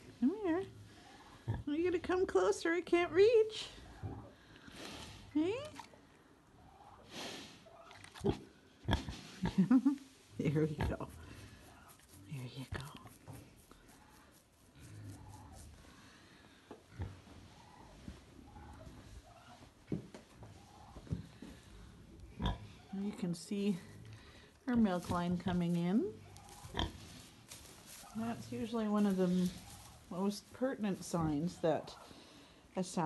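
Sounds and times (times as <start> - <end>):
faint rustling: 10.0 - 32.0.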